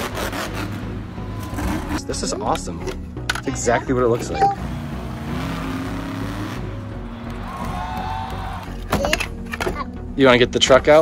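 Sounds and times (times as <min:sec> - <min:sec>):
monster truck engine running hard: 0:04.6 - 0:06.8.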